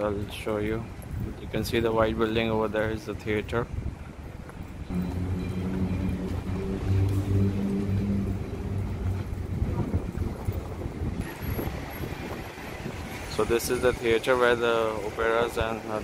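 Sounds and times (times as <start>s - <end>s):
wind rumbling on microphone: 0.0s - 16.0s
vehicle engine humming: 4.4s - 12.9s.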